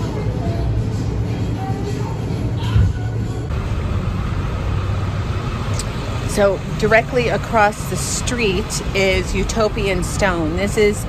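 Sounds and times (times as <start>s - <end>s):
road traffic rumble: 0.0s - 11.0s
woman speaking: 6.3s - 11.0s.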